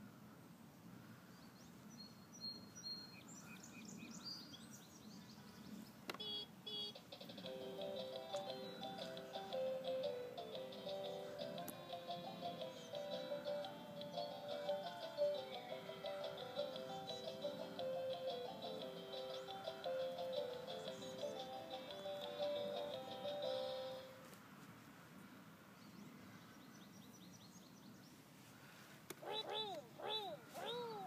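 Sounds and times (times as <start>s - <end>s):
toy car beeping melody: 11.9s - 24.1s.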